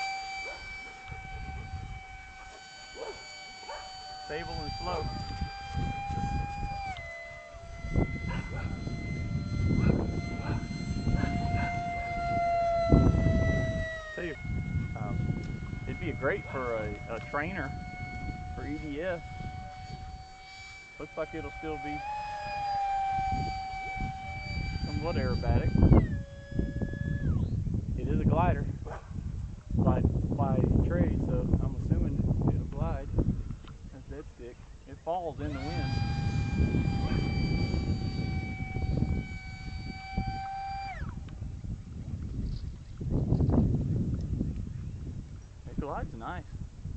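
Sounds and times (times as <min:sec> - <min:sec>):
electric ducted fan whine: 0:00.0 - 0:46.9
wind buffeting microphone: 0:00.0 - 0:46.9.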